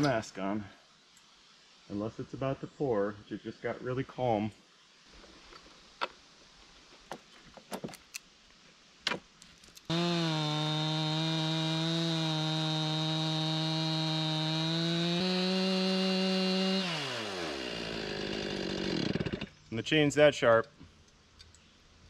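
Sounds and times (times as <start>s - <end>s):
chainsaw cutting log at full throttle: 9.9s - 19.5s.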